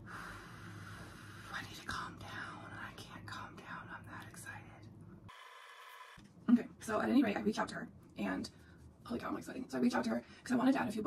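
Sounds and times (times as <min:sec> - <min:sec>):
woman whispering: 0:01.5 - 0:04.9.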